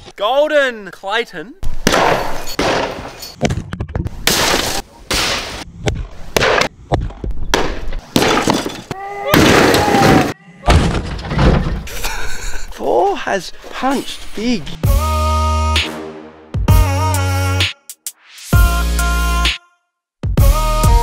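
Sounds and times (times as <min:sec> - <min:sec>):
hammer crashes and smashing: 0:08.2 - 0:11.9
shattering: 0:08.2 - 0:11.9
people shouting: 0:08.9 - 0:10.8.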